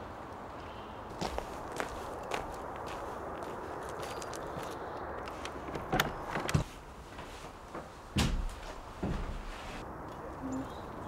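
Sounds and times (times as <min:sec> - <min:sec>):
footsteps on gravel: 0:01.1 - 0:09.8.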